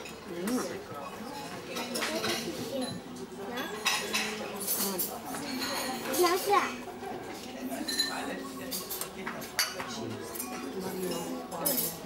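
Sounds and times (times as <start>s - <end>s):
cutlery and crockery clinking: 0.0s - 12.0s
child talking: 6.1s - 6.8s.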